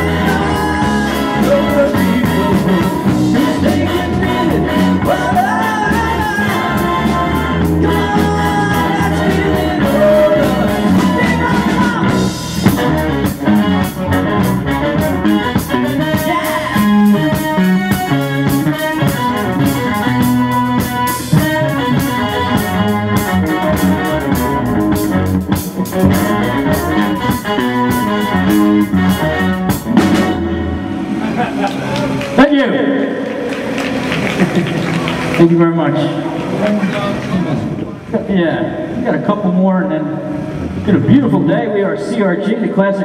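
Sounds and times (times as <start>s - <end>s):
live rock band playing: 0.0s - 42.1s.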